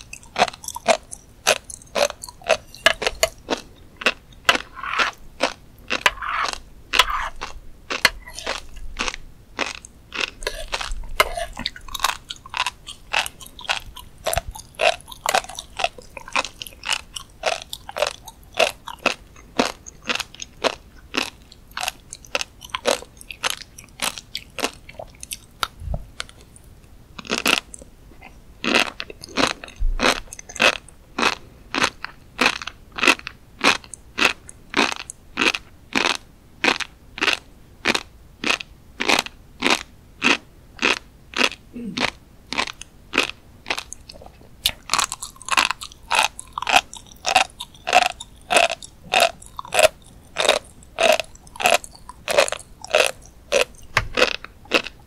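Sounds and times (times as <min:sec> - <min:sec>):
close chewing of fish roe: 0:00.0 - 0:55.0.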